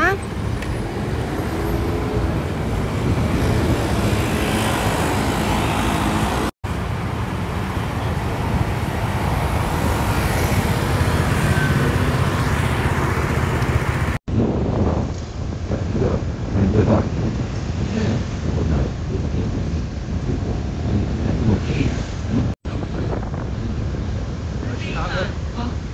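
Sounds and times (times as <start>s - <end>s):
street traffic: 0.0s - 25.9s.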